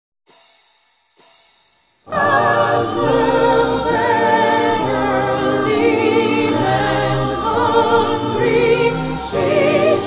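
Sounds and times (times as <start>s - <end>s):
cymbal strikes ringing: 0.3s - 2.1s.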